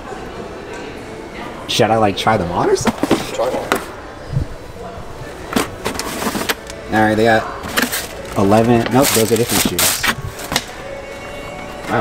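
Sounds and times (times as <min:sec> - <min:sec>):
cardboard and tissue paper rustling: 0:07.6 - 0:10.6.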